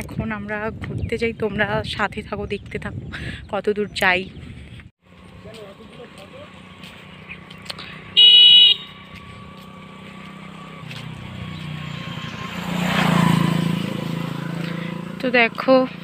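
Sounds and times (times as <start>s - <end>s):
scooter engine passing: 5.1s - 16.0s
scooter horn toot: 8.0s - 9.1s.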